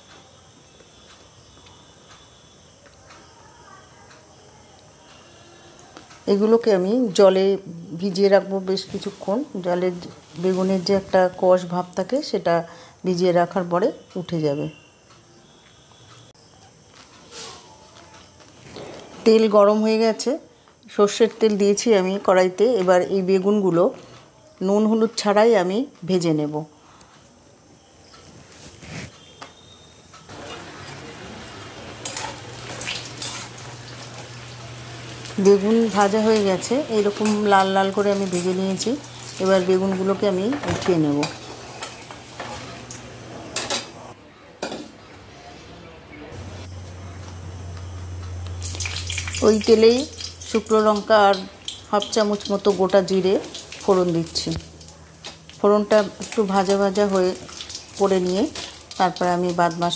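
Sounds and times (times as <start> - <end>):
light oil sizzle: 0.0 - 12.3, 30.1 - 43.9, 46.9 - 59.9.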